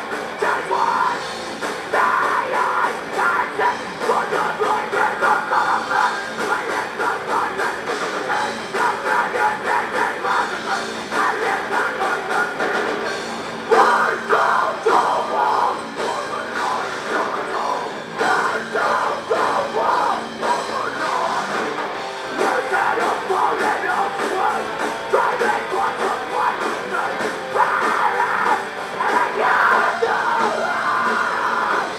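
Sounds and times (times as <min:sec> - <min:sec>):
distorted electric guitars: 0:00.0 - 0:31.9
drum kit: 0:00.0 - 0:31.9
metal band playing live: 0:00.0 - 0:31.9
person singing into microphone: 0:01.9 - 0:12.6, 0:13.7 - 0:21.5, 0:22.3 - 0:31.9.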